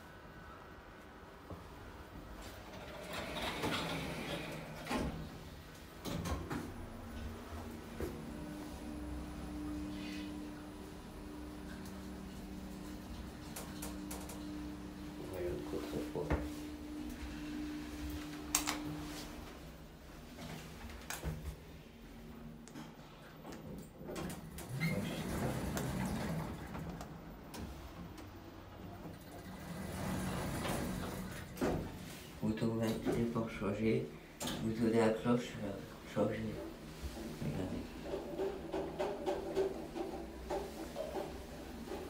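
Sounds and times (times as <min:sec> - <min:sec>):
sliding lift doors moving: 0:02.0 - 0:21.5, 0:23.8 - 0:33.4, 0:36.7 - 0:42.0
lift motor humming: 0:06.7 - 0:19.7.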